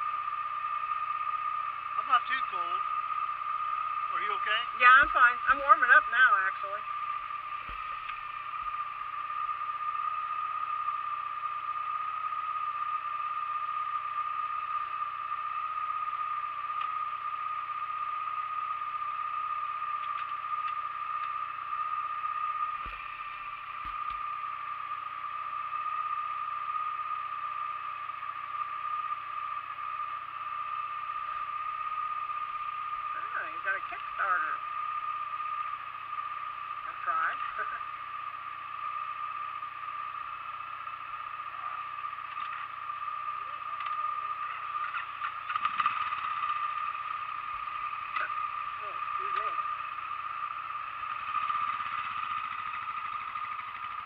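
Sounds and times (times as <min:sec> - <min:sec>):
motorcycle engine idling: 0:00.0 - 0:54.0.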